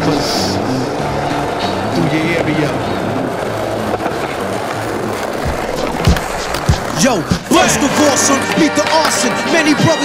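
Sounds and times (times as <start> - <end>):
skateboard wheels rolling on concrete: 0.0 - 10.0
hip-hop music: 5.1 - 10.0.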